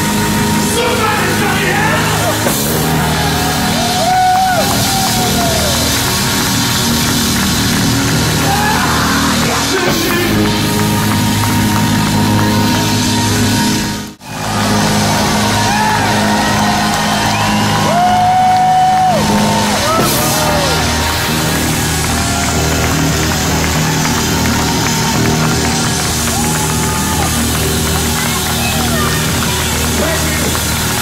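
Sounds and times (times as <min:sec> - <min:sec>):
blues band playing: 0:00.0 - 0:31.0.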